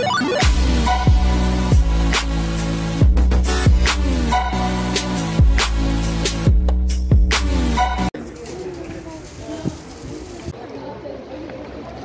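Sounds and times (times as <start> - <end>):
loud music: 0.0 - 8.1
outdoor background murmur: 8.1 - 12.0
faint indistinct voices: 8.2 - 12.0.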